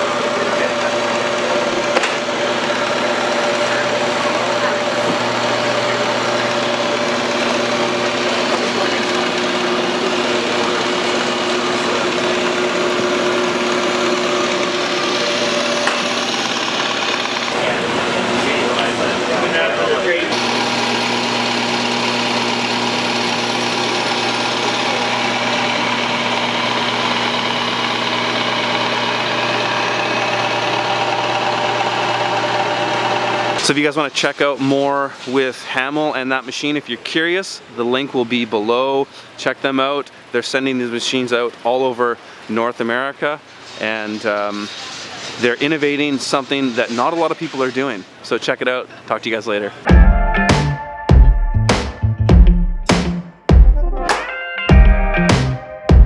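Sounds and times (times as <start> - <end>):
machine motor hum: 0.0 - 33.7.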